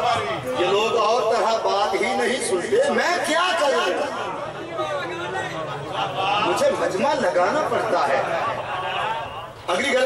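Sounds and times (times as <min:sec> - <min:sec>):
men talking: 0:00.0 - 0:10.0
people chattering: 0:00.0 - 0:10.0.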